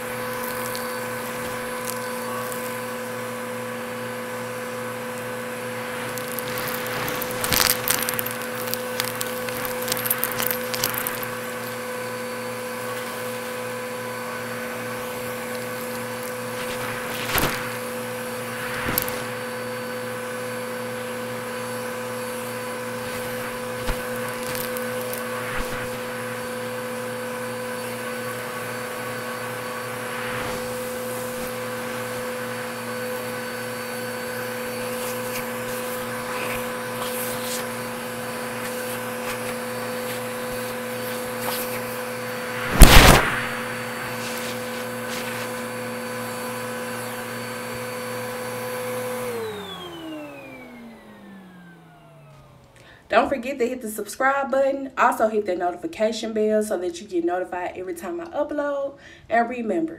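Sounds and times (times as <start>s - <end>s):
vacuum cleaner humming: 0.0s - 53.2s
debris crunching in vacuum: 4.7s - 12.6s, 14.6s - 20.2s, 22.2s - 27.2s, 27.8s - 46.8s.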